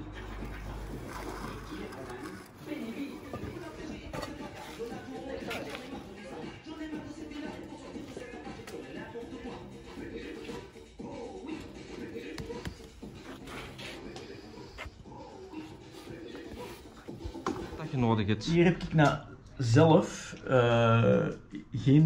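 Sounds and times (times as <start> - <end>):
radio playing music and talk: 0.0 - 22.0.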